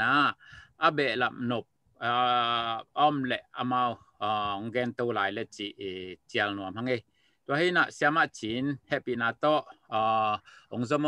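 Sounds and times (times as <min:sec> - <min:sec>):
man speaking over video call: 0:00.0 - 0:11.0.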